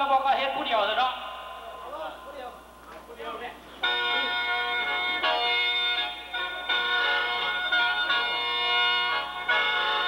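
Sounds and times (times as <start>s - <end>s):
man speaking: 0.0s - 5.4s
mouth organ chord: 3.6s - 10.0s.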